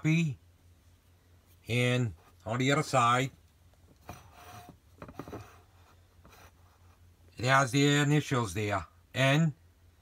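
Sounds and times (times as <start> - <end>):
rubbing on metal tumbler: 2.0 - 2.8, 3.9 - 7.2.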